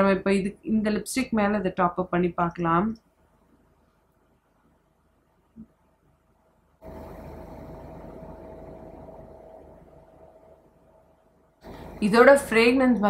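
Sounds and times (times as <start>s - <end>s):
faint hiss with high hum: 0.0s - 13.0s.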